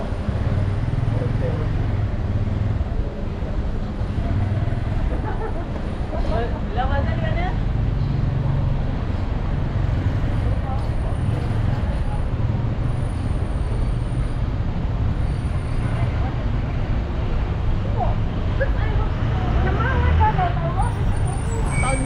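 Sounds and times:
vehicle engines rumbling: 0.0 - 22.0.

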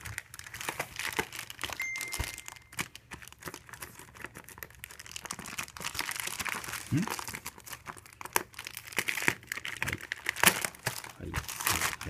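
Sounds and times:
plastic wrapping crinkling: 0.0 - 12.0
steady high tone: 1.8 - 2.8.

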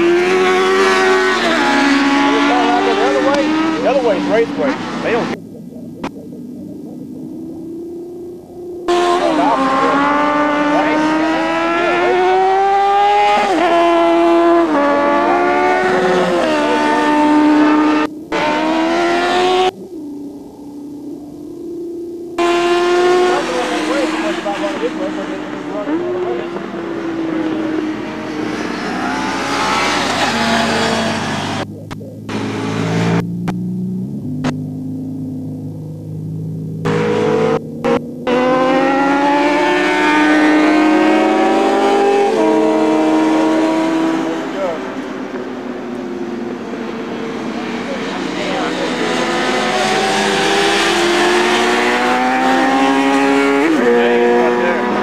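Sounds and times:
racing motorcycle engines passing: 0.0 - 55.0.

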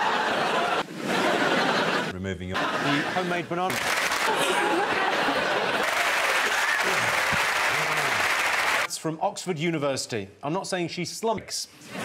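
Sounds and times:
audience applauding: 3.7 - 8.9.

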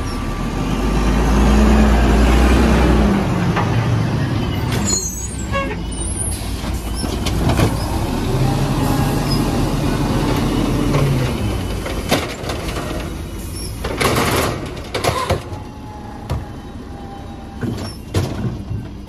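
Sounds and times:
truck engine revving: 0.0 - 4.8, 5.9 - 17.7.

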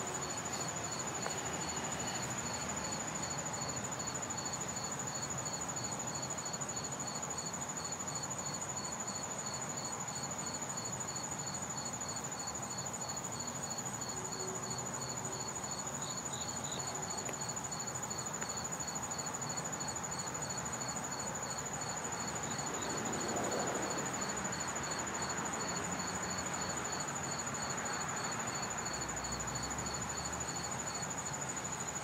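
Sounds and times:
insect chirping in pulses: 0.0 - 32.0.

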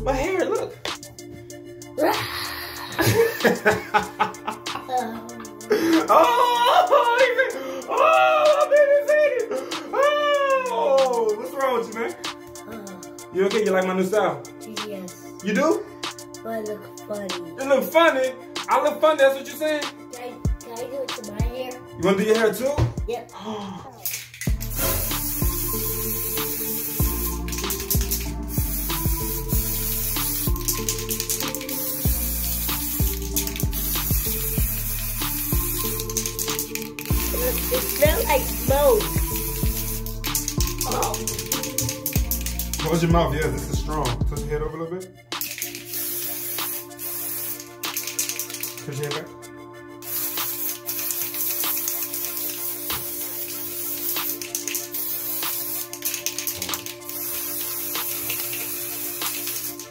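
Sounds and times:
background music with beat: 0.0 - 59.9
aerosol spray hissing: 2.0 - 8.8, 24.4 - 43.1, 45.4 - 48.9, 50.0 - 59.9
boy squealing playfully: 6.0 - 9.1, 9.9 - 11.3.

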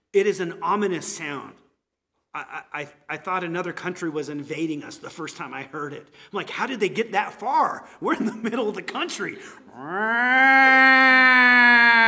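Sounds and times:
man imitating a siren wail: 9.8 - 12.0.

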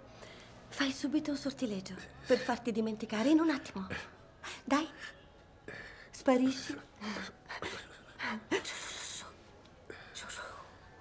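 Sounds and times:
soft whispering: 3.4 - 11.0.

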